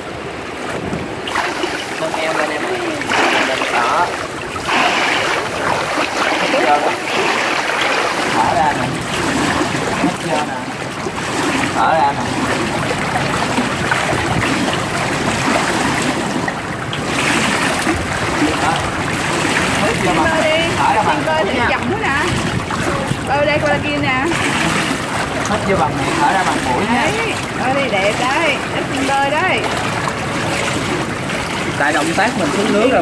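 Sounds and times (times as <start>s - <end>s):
pool water splashing: 0.0s - 33.0s
voices talking: 1.3s - 13.9s, 18.2s - 30.4s.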